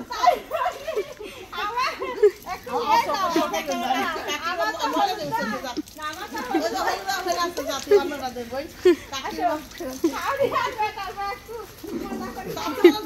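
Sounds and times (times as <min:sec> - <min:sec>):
women laughing: 0:00.0 - 0:11.2, 0:11.8 - 0:13.0
women talking excitedly: 0:00.0 - 0:13.0.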